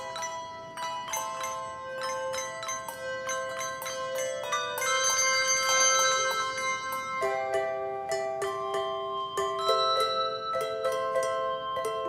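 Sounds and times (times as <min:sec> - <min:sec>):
handbells ringing: 0:00.0 - 0:12.0.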